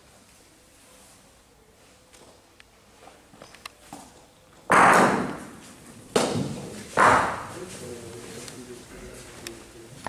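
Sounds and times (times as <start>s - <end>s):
loud echoing thud: 4.7s - 5.6s, 6.2s - 7.6s.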